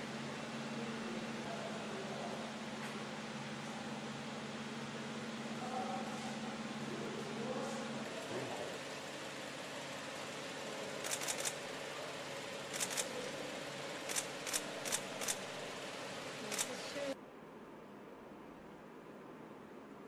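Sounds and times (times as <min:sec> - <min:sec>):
sharp clicks: 0:11.0 - 0:11.6, 0:12.7 - 0:13.1, 0:14.1 - 0:15.4, 0:16.5 - 0:16.8.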